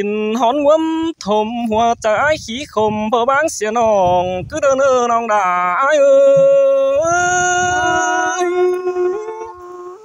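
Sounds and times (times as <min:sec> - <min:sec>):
person singing folk song: 0:00.0 - 0:10.0.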